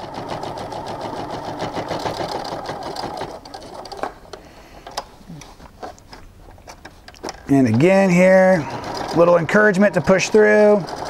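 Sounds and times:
sewing machine stitching: 0.0s - 4.1s, 7.3s - 11.0s.

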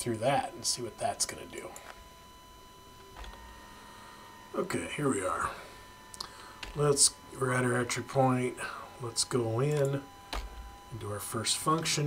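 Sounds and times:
thin electrical whine: 0.0s - 12.0s.

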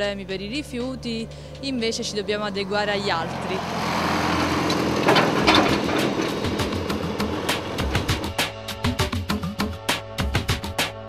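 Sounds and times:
tractor engine clattering: 0.0s - 8.6s.

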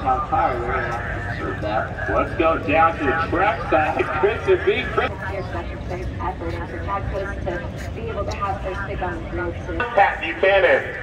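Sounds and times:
steady low rumble: 0.0s - 11.0s
woman's voice over loudspeakers: 4.1s - 10.2s.

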